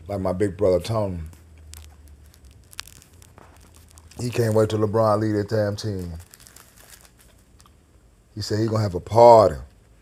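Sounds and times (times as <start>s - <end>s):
man speaking: 0.0s - 1.3s, 4.1s - 6.3s, 8.4s - 9.7s
faint crackling and clicks: 0.1s - 10.0s.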